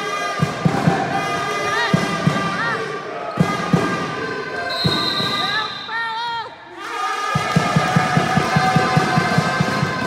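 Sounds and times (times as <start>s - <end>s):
basketball bouncing in hall: 0.1s - 6.5s.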